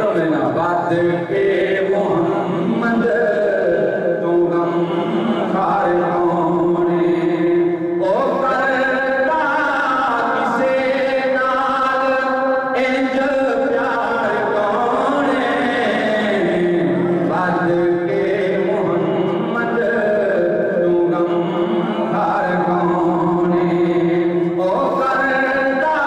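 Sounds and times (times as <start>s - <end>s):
man singing unaccompanied: 0.0s - 26.0s.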